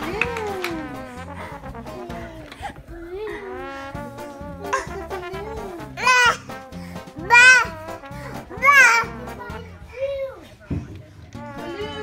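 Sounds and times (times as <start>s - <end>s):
background music: 0.0s - 12.0s
toddler squealing: 7.2s - 9.2s.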